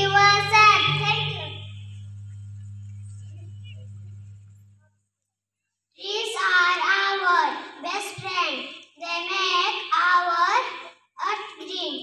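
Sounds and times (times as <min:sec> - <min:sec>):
girl singing into microphone: 0:00.0 - 0:01.6.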